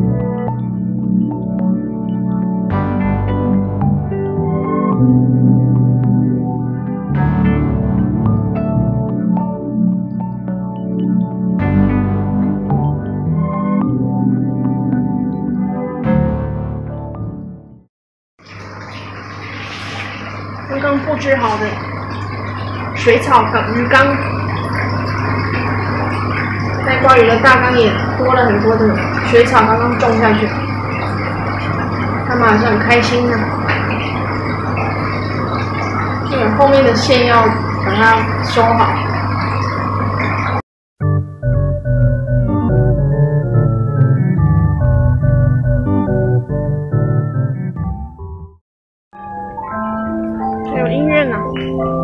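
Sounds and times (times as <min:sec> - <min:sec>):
low hum: 0:18.4 - 0:40.6
water splashing from filter: 0:18.4 - 0:40.6
woman speaking: 0:20.7 - 0:21.8, 0:23.0 - 0:24.3, 0:26.8 - 0:30.6, 0:32.3 - 0:33.6, 0:36.3 - 0:39.0, 0:50.7 - 0:51.7
instrumental organ-like music: 0:41.0 - 0:48.4.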